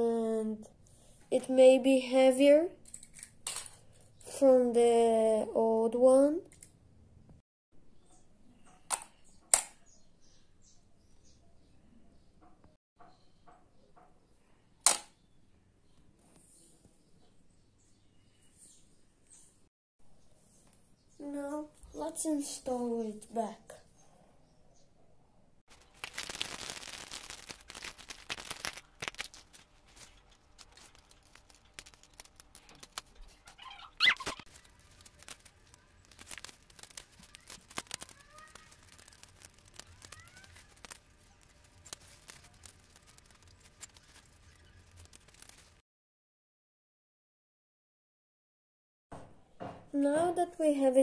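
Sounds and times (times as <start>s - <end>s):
short squeaky burst: 33.6s - 34.5s.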